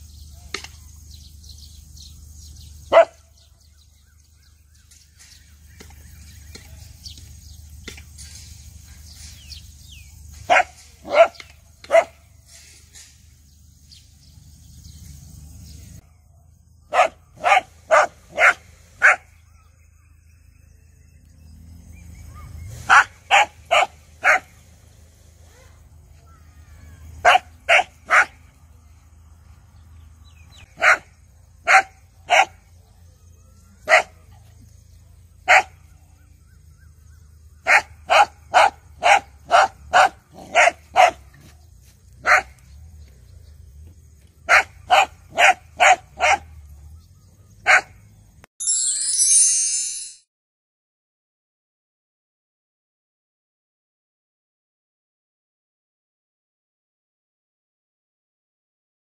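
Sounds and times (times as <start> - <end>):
dog barking: 2.9 - 3.4, 10.5 - 12.2, 16.9 - 19.3, 22.9 - 24.6, 27.2 - 28.4, 30.8 - 32.7, 33.8 - 34.2, 35.5 - 35.8, 37.6 - 41.3, 42.2 - 42.6, 44.5 - 46.6, 47.6 - 48.0.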